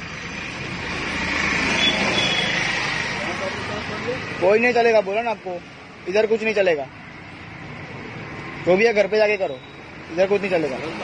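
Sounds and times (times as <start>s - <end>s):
road vehicle passing: 0.0s - 11.0s.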